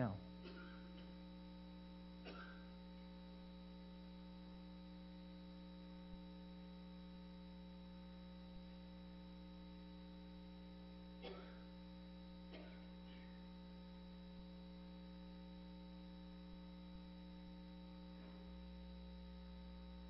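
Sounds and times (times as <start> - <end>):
electrical mains hum: 0.0 - 20.0.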